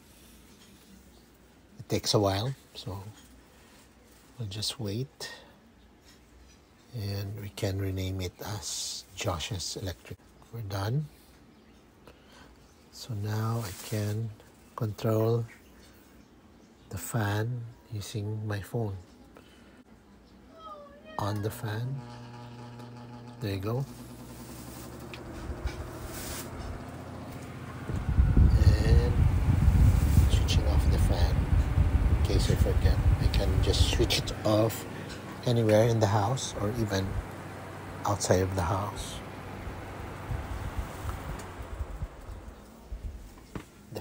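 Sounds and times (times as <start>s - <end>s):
electric fan humming: 21.0s - 44.0s.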